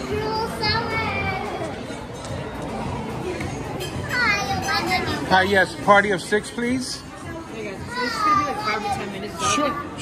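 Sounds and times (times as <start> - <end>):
young children's voices: 0.0 - 1.8
restaurant murmur: 0.0 - 10.0.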